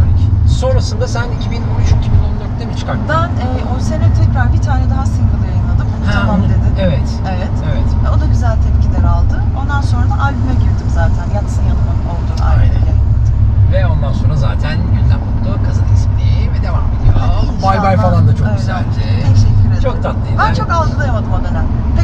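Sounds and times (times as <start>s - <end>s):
people talking: 0.0s - 13.0s, 13.7s - 22.0s
car engine and tyre rumble: 0.0s - 22.0s.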